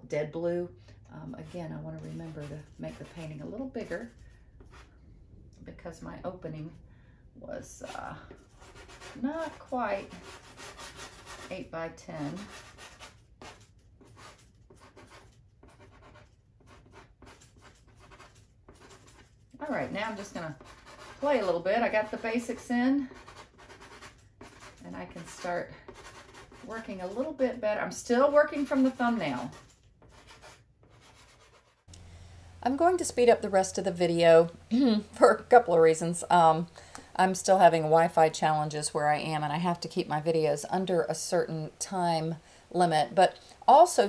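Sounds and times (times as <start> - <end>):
pastel scratching on paper: 12.2 - 27.4, 28.2 - 31.9.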